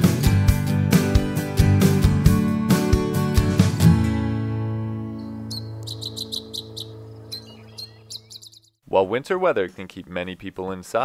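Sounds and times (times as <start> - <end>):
strummed acoustic guitar chord: 0.8 - 5.2
bird chirping: 5.2 - 8.8.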